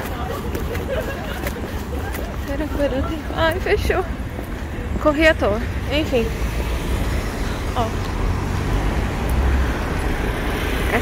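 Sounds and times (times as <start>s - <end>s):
faint voices of passers-by: 0.0s - 11.0s
traffic rumble: 0.0s - 11.0s.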